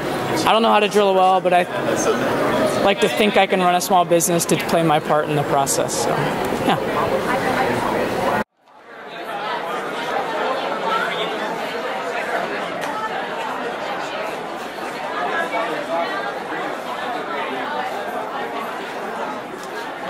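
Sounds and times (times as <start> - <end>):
babble of many people talking: 0.0 - 20.0.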